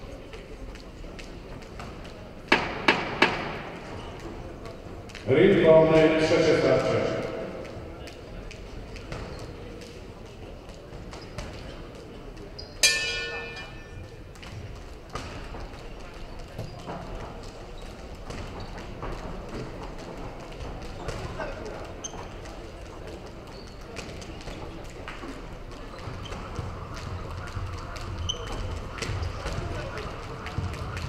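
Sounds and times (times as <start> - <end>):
murmur of crowd in hall: 0.0 - 31.0
boxing ring bell: 12.8 - 14.1.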